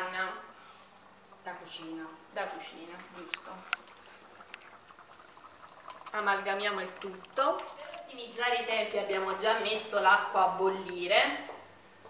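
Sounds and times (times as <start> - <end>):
stew bubbling in a pot: 0.4 - 10.4.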